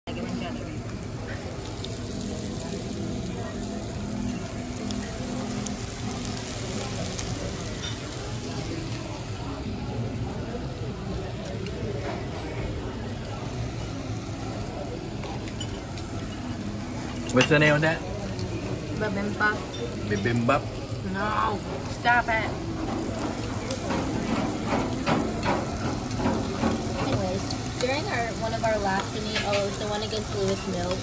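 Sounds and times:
murmur of voices: 0.0 - 31.0
meat sizzling on a grill: 0.1 - 31.0.

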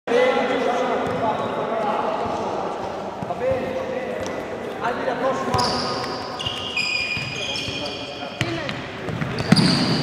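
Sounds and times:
voices calling out in a hall: 0.1 - 10.0.

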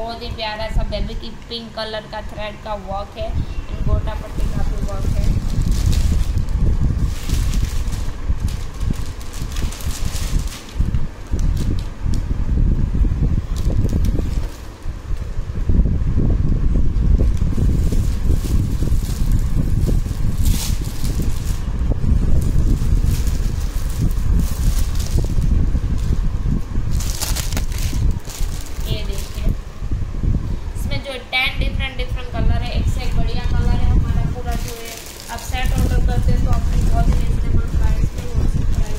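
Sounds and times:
low rumble of air noise: 0.0 - 38.9
microphone handling noise: 3.4 - 31.0, 31.6 - 38.9
plastic packaging crinkling: 4.2 - 11.9, 17.2 - 26.2, 26.9 - 29.5, 34.1 - 38.9.

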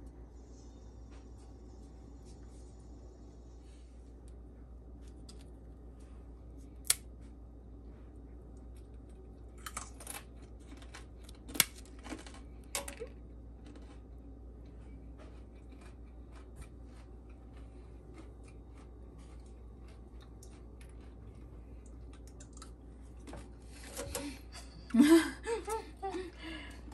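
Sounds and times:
low steady hum: 0.0 - 26.9
banana chips crackling and snapping: 6.8 - 7.1, 8.8 - 14.1.

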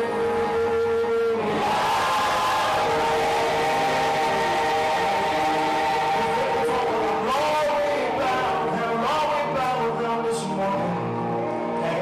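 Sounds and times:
church worship music: 0.0 - 12.0.

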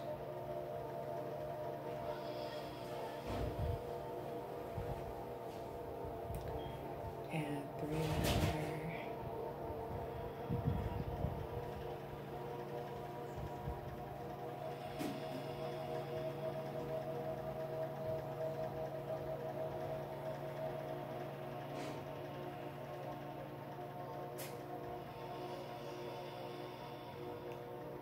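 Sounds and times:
ambient drone music: 0.0 - 28.0.

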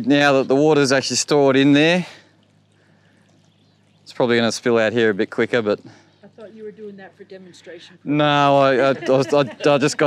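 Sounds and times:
faint steady outdoor hiss: 0.0 - 10.0.

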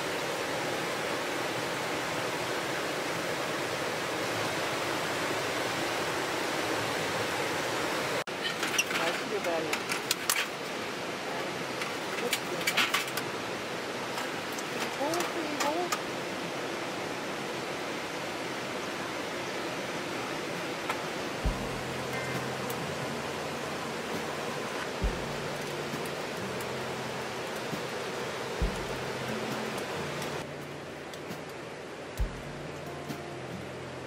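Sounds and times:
mountain stream rushing: 0.0 - 34.0
slow background music: 20.6 - 34.0.

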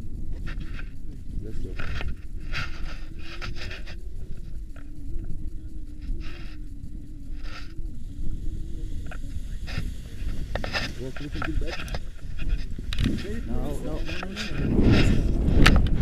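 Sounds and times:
faint steady hum: 0.0 - 16.0
wind buffeting microphone: 0.0 - 16.0.

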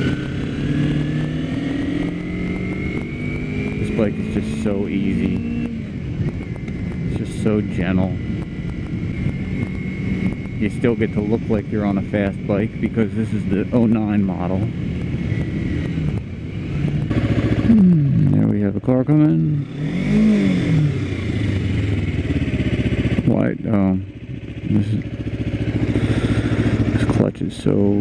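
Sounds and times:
motorcycle engine running: 0.0 - 28.0.

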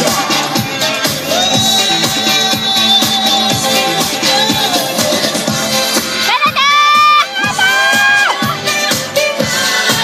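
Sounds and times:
dance music with steady beat: 0.0 - 10.0
children shouting and cheering: 6.2 - 9.4.

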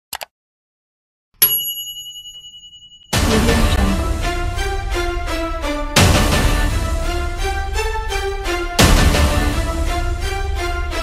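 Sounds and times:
bright bell ding: 1.4 - 3.3.

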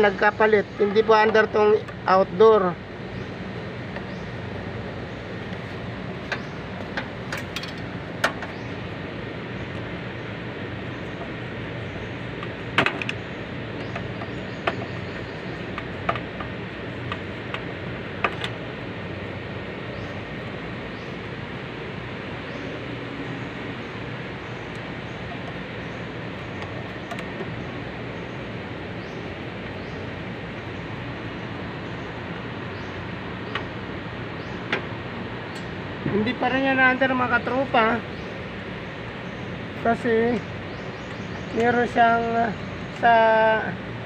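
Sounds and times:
steady background hum: 0.0 - 44.0.

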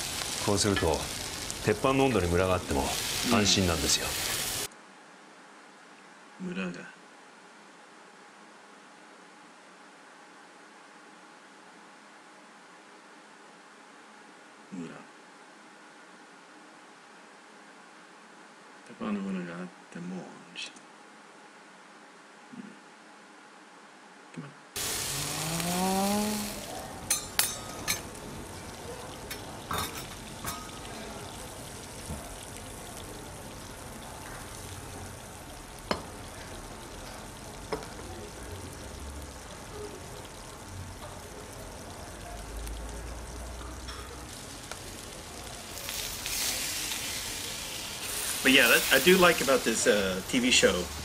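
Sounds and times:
food sizzling on a griddle: 0.0 - 4.7, 24.8 - 51.0.

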